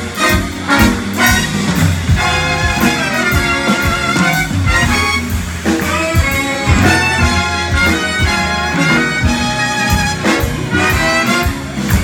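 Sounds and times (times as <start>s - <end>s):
saxophones and brass: 0.0s - 12.0s
steady drum beat: 0.0s - 12.0s.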